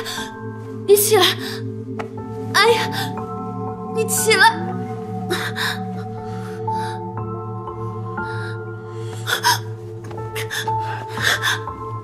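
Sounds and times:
soft drama score music: 0:00.0 - 0:12.0.

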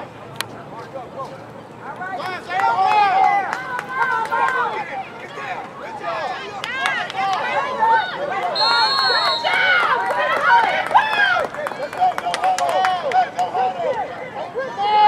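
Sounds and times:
spectators shouting and cheering: 0:01.9 - 0:15.0
referee's whistle: 0:08.6 - 0:09.8.

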